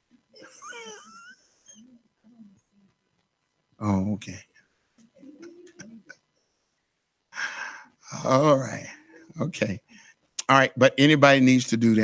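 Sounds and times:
faint low murmurs: 0:03.8 - 0:06.2, 0:07.4 - 0:12.0.

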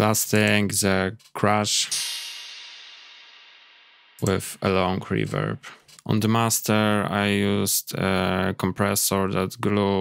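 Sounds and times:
crash cymbal with reverb: 0:01.9 - 0:04.4.

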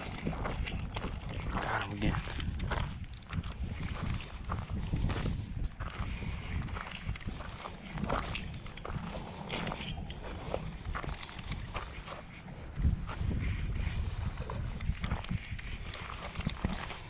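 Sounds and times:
wind rumbling on microphone: 0:00.0 - 0:17.0.

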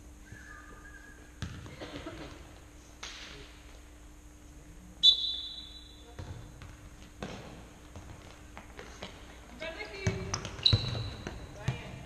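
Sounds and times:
ball thudding on hard floor: 0:01.4 - 0:02.0, 0:06.2 - 0:09.2
referee's whistle blast: 0:05.0 - 0:06.0.

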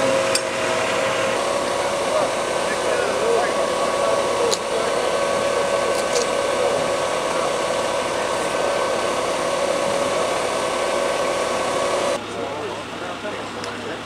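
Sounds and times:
machine hissing rush: 0:00.0 - 0:12.2
machine whining tones: 0:00.0 - 0:12.3.

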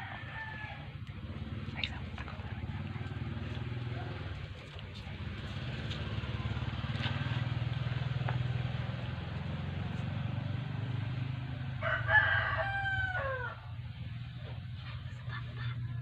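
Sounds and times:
rooster crowing: 0:00.0 - 0:01.0, 0:11.6 - 0:13.8
steady low hum: 0:00.0 - 0:06.9.

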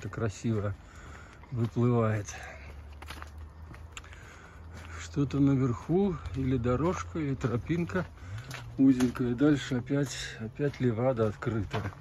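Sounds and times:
soft footsteps: 0:00.0 - 0:12.0.

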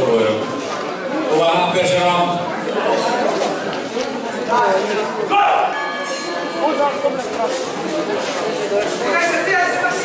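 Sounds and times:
people shouting in echoing hall: 0:05.2 - 0:07.0.

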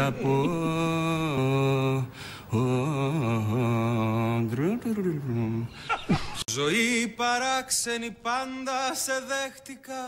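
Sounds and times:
man singing unaccompanied: 0:00.0 - 0:05.8, 0:06.4 - 0:10.0.

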